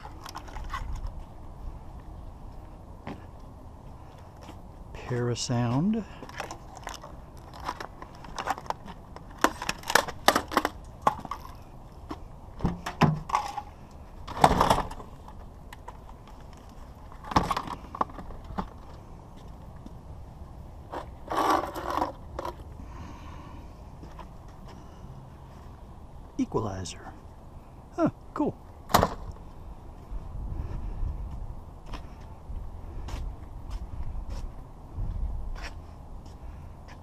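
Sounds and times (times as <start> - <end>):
handling metal unit and wires: 6.1 - 19.0, 20.9 - 22.7.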